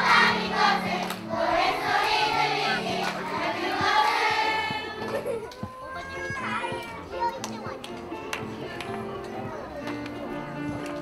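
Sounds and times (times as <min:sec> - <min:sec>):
young children chattering: 0:04.9 - 0:10.8.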